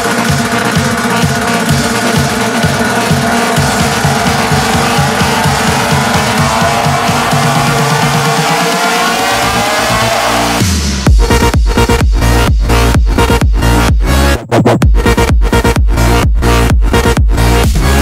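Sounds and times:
pulsing bass line: 0:00.0 - 0:18.0.

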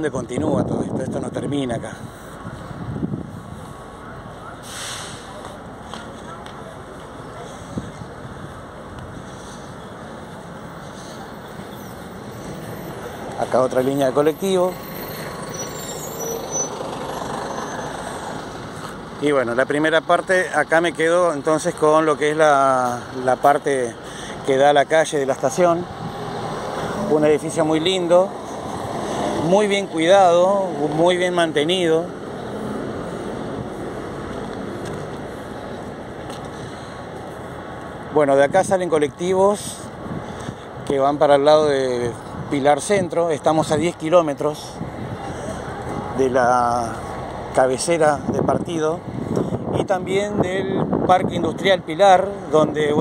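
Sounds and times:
road traffic rumble: 0:00.0 - 0:53.0
steady outdoor noise: 0:00.0 - 0:53.0.

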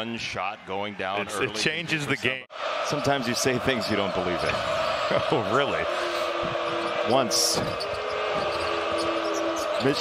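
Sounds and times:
arena crowd din: 0:00.0 - 0:10.0
held tone in crowd noise: 0:03.1 - 0:10.0.

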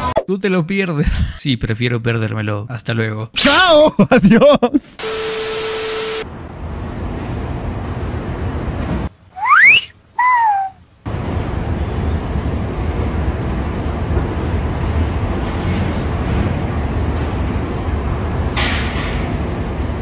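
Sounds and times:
low rumble of street noise: 0:06.2 - 0:09.4, 0:10.8 - 0:20.0
wolf whistle: 0:09.3 - 0:10.8.

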